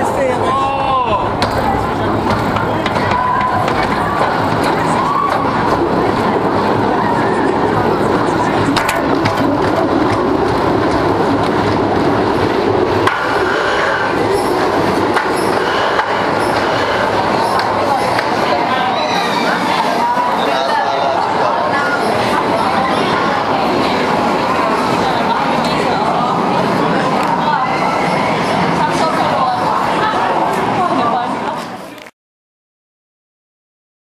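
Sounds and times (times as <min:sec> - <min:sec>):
roller coaster wheels rumbling: 0:00.0 - 0:31.7.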